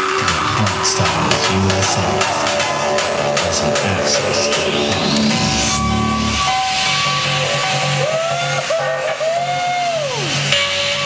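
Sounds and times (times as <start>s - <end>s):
synth line gliding in pitch: 0.0s - 8.8s
hardstyle dance music over pa: 0.0s - 10.5s
rising hiss sweep: 0.0s - 10.5s
steady bass note: 0.1s - 7.2s.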